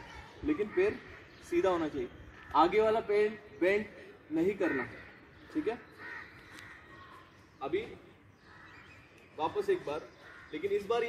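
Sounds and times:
crow cawing: 2.3s - 2.9s, 4.3s - 7.3s, 8.3s - 9.2s, 9.8s - 11.0s
man speaking: 9.4s - 11.0s.

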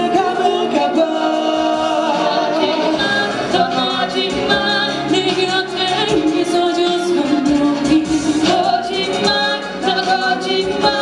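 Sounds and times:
group singing in chorus: 0.0s - 11.0s.

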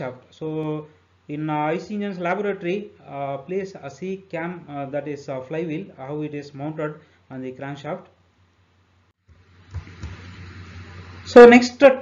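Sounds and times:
microphone hiss and hum: 0.0s - 12.0s.

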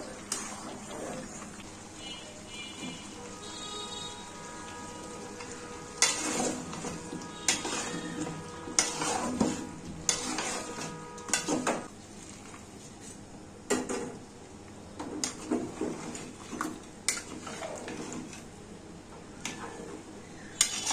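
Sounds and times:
food sizzling: 0.0s - 12.0s
utensil scraping and knocking pot: 5.4s - 11.9s, 20.6s - 20.9s.

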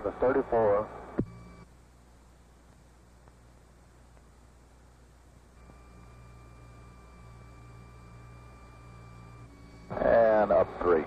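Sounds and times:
faint hiss and low hum: 0.0s - 11.0s
short radio buzz: 9.7s - 11.0s.

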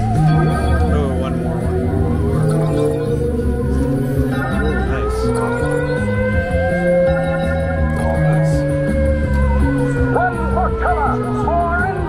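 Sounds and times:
warbling tone: 0.0s - 9.0s
low bass notes: 0.0s - 12.0s
rising siren-like tone: 0.0s - 12.0s.

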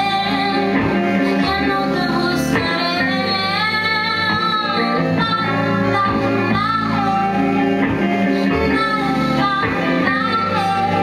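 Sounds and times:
electric guitar: 0.0s - 11.0s.

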